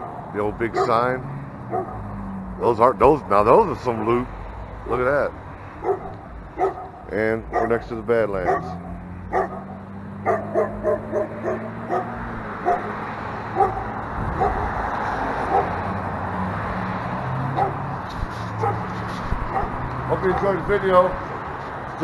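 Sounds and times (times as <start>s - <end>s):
street noise with low hum: 0.0s - 22.0s
dog barking: 0.7s - 1.1s, 1.7s - 2.0s, 5.8s - 14.8s, 15.4s - 15.8s, 17.5s - 17.8s, 18.6s - 18.9s, 19.5s - 20.5s.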